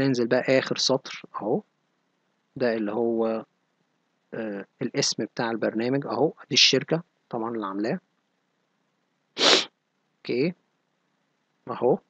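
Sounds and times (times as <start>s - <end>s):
man sneezing: 9.4s - 9.7s.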